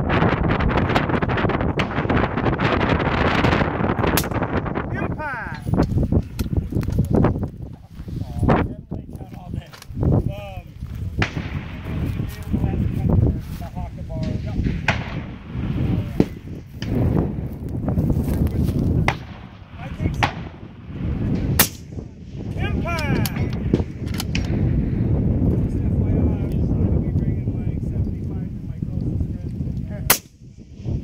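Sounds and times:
wind rumble on microphone: 0:00.0 - 0:31.0
rifle shots cracking: 0:03.3 - 0:04.7, 0:11.2 - 0:12.5, 0:14.2 - 0:17.2, 0:19.0 - 0:22.1, 0:23.3 - 0:24.7, 0:30.1 - 0:30.5.

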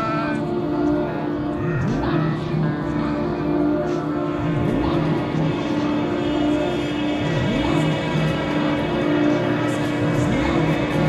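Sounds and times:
droning synthesizer chord: 0:00.0 - 0:11.0
pulsing low synth notes: 0:00.0 - 0:11.0.

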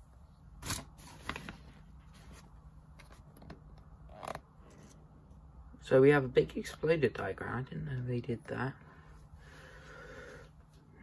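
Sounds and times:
paper crinkle: 0:00.6 - 0:03.3
paper rustling: 0:00.6 - 0:03.3.

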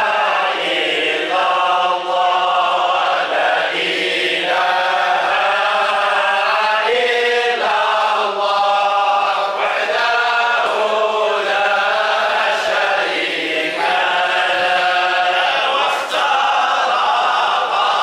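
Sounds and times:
men chanting together: 0:00.0 - 0:18.0.

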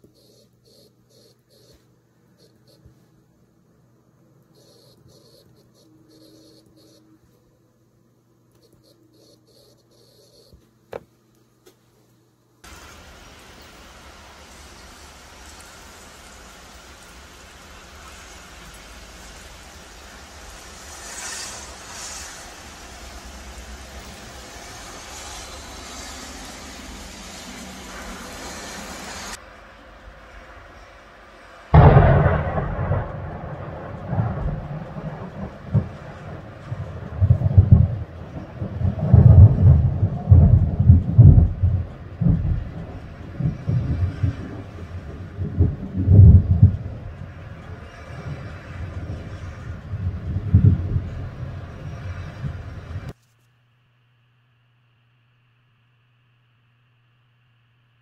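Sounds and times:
rain falling steadily: 0:12.6 - 0:53.2
rolling thunder: 0:31.7 - 0:53.1
loud thunderclap: 0:31.8 - 0:53.1.

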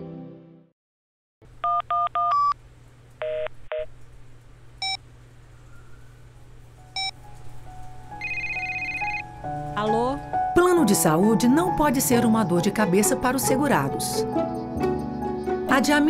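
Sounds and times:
music: 0:00.0 - 0:00.7, 0:06.8 - 0:16.0
phone keypad beeps: 0:08.2 - 0:09.2
trilling electronic phone tone: 0:08.2 - 0:09.3.

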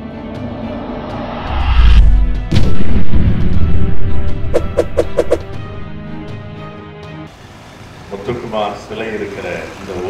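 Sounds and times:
intro music: 0:00.0 - 0:07.3
rising whoosh: 0:00.4 - 0:05.6
sharp hit: 0:00.7 - 0:05.5
deep boom: 0:01.4 - 0:05.0.

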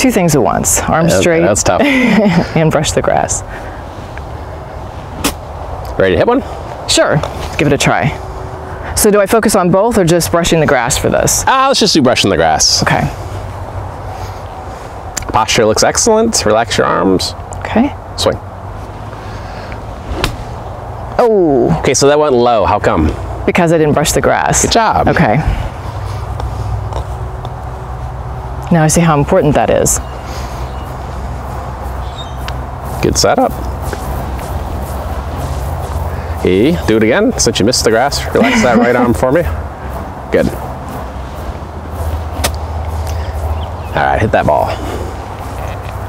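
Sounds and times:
low outdoor rumble: 0:00.0 - 0:46.0
golf club striking ball: 0:20.1 - 0:20.6.

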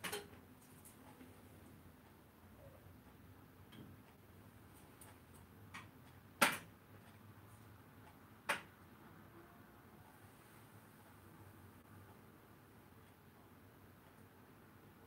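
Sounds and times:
sharp clicks and knocks: 0:00.0 - 0:01.3, 0:04.9 - 0:07.2, 0:08.1 - 0:08.8.

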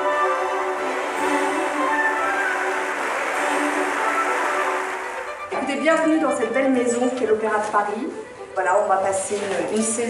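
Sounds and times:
steady noisy wash: 0:00.0 - 0:06.2
orchestral music: 0:00.0 - 0:07.2.

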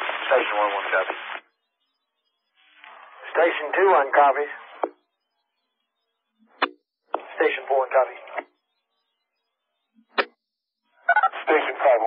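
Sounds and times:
person speaking over radio: 0:00.0 - 0:01.4, 0:03.0 - 0:05.0, 0:07.2 - 0:08.4, 0:11.2 - 0:12.0
radio keying burst: 0:00.0 - 0:01.6, 0:02.5 - 0:05.2, 0:07.1 - 0:08.6, 0:11.0 - 0:12.0.

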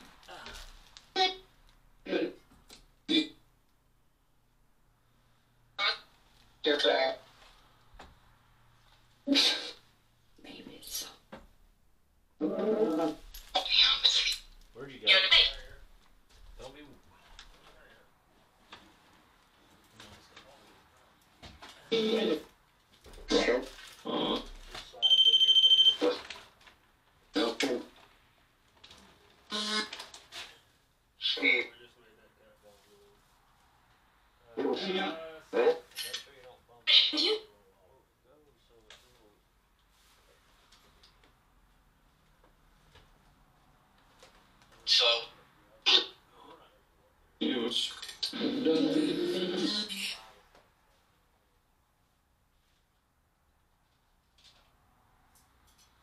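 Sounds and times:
voice-like word fragments: 0:00.2 - 0:02.5, 0:05.8 - 0:07.3, 0:12.4 - 0:15.9, 0:23.2 - 0:25.2, 0:27.3 - 0:28.0, 0:31.2 - 0:33.2, 0:34.5 - 0:37.8, 0:44.8 - 0:46.8, 0:47.4 - 0:50.5
high electronic beep: 0:25.0 - 0:26.0.

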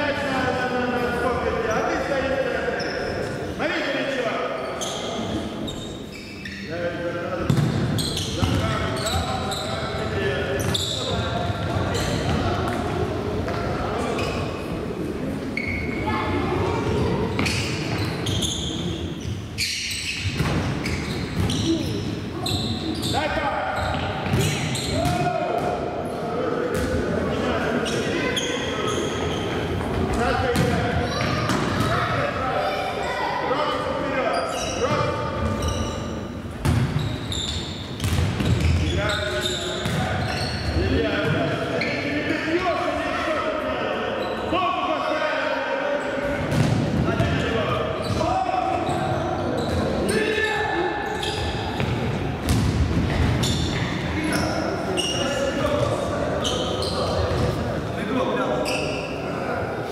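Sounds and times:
football kicked and bouncing: 0:07.5 - 0:07.7.

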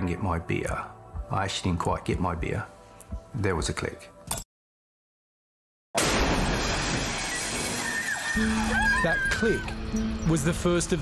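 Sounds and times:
loud explosion: 0:06.0 - 0:08.1.

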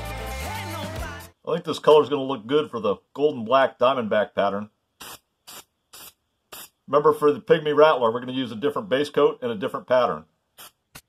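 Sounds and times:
aerosol can spraying hiss: 0:05.0 - 0:06.8, 0:10.6 - 0:11.0.

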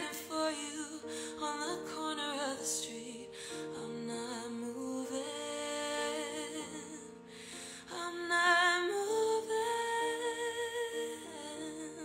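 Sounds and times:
woman singing wordless melody: 0:00.0 - 0:12.0.

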